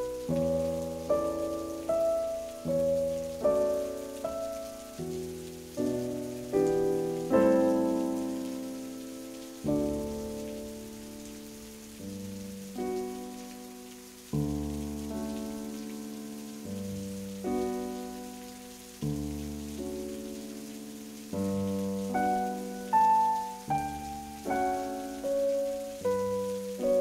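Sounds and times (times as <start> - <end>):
rain-like hiss: 0.0 - 27.0
slow solo piano chords: 0.0 - 27.0.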